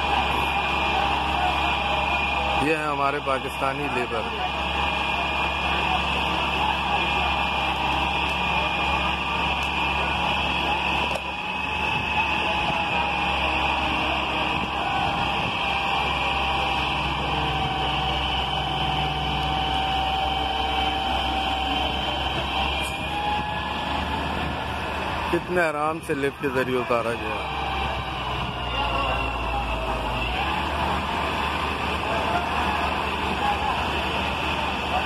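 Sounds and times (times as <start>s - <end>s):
excavator diesel engine running: 0.0s - 35.0s.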